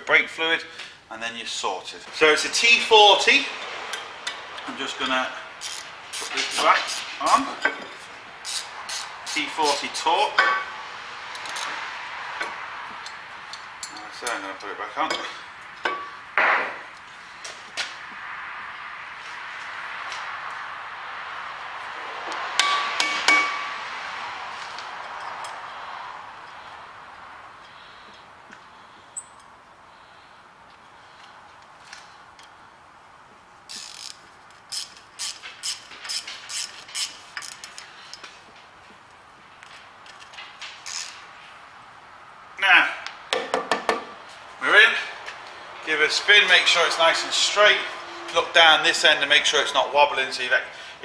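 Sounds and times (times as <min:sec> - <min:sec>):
sharp ringing metal knocks: 0:22.6 - 0:23.8.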